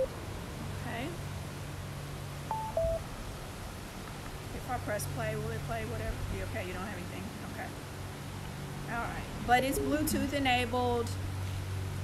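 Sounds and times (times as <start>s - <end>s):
two-note speaker beep: 2.5s - 3.0s, 9.7s - 10.4s.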